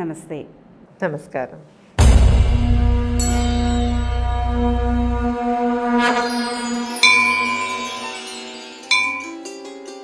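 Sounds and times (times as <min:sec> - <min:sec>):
bell-like chimes: 0:06.0 - 0:09.9.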